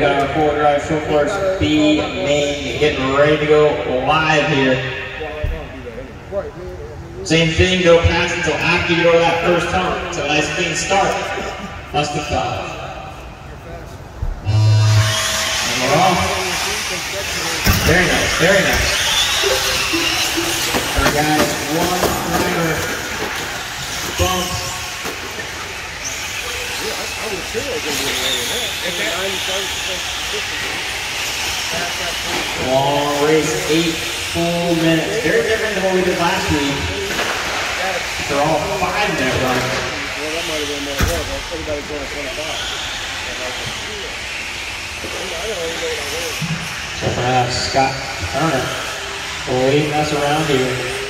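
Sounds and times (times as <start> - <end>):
people talking in background: 4.8 - 7.6
rc trucks racing: 14.5 - 51.0.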